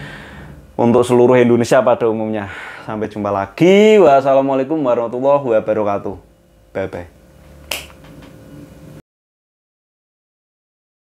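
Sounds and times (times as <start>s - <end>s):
sharp click: 7.7s - 8.3s.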